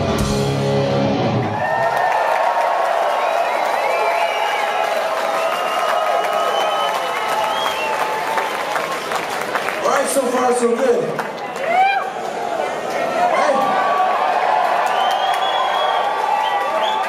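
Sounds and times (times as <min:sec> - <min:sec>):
punk rock band chord: 0:00.0 - 0:01.5
crowd cheering and yelling: 0:00.0 - 0:17.0.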